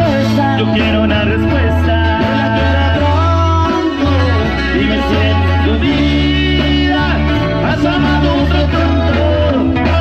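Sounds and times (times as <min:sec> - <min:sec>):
guitar melody: 0:00.0 - 0:10.0
stepping bass line: 0:00.0 - 0:10.0.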